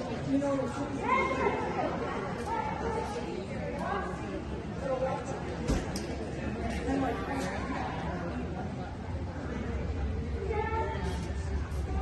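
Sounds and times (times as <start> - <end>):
indistinct voices and chatter: 0.0 - 12.0.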